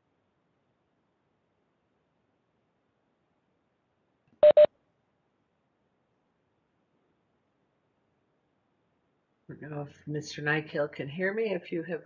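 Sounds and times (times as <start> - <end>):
short electronic beeps: 4.4 - 4.7.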